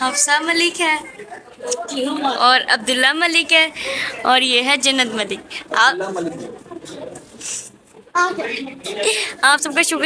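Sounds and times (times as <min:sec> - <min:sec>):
murmured voices: 0:00.0 - 0:10.0.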